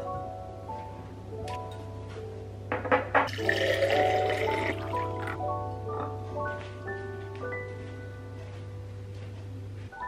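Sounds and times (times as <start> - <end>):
water running into glass: 3.3 - 5.4.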